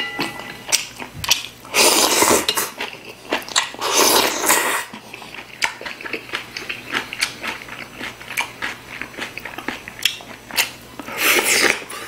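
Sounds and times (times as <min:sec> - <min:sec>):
person chewing food: 0:00.2 - 0:12.0.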